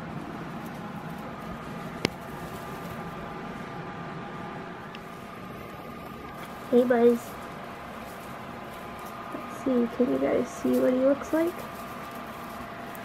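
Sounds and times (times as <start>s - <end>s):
room hum and hiss: 0.0s - 13.0s.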